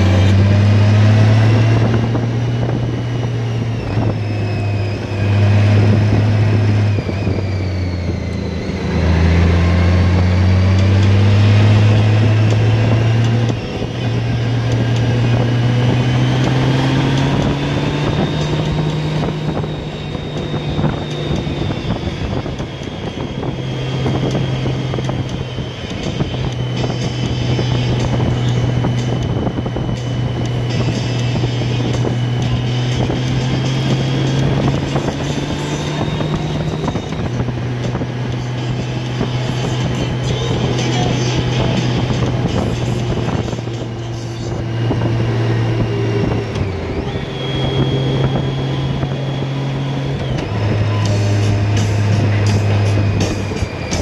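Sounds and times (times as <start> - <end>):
motorcycle engine running: 0.0 - 54.0
wind noise on microphone: 0.0 - 54.0.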